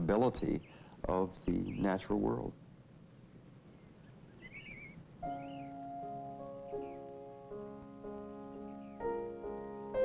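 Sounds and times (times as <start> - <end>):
faint background hiss: 0.0 - 10.0
warbling bird call: 3.7 - 5.9.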